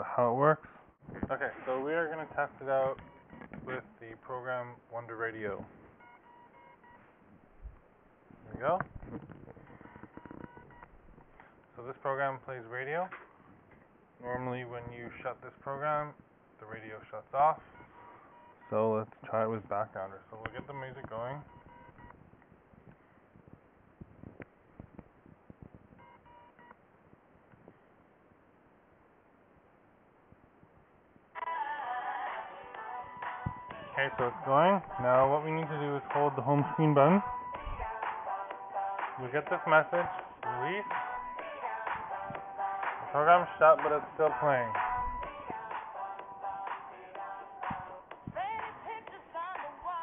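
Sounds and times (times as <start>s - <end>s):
low room noise: 0.0s - 50.0s
faint electronic tones: 1.3s - 3.8s, 4.5s - 7.8s, 8.4s - 11.4s, 16.6s - 22.3s
pop and hip hop music from phone: 31.4s - 50.0s.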